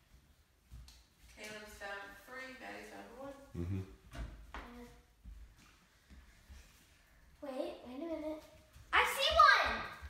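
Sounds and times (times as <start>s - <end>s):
short voice: 3.6s - 4.0s.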